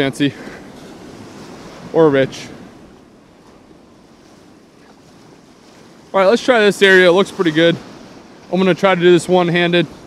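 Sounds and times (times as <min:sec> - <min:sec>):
surf washing over sand: 0:00.0 - 0:10.0.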